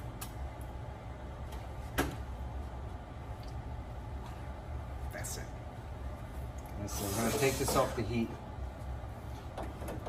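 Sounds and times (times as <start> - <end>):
low kitchen hum: 0.0 - 10.0.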